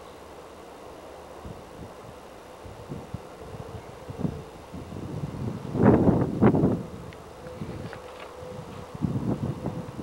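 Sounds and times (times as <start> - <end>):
wind buffeting microphone: 1.4 - 10.0.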